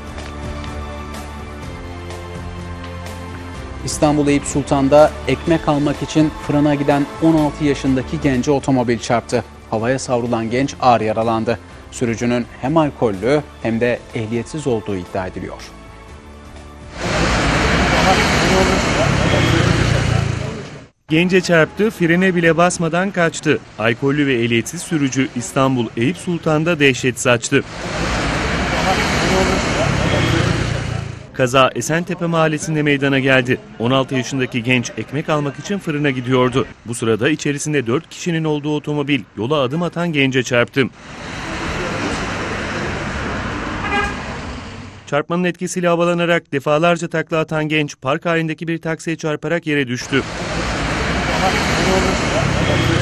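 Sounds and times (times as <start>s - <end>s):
street traffic: 0.0s - 45.2s, 49.9s - 53.0s
passing cars: 16.5s - 31.4s, 32.5s - 45.1s, 50.0s - 53.0s
indistinct voices: 17.0s - 38.9s, 50.0s - 53.0s
car horn toot: 43.8s - 44.3s.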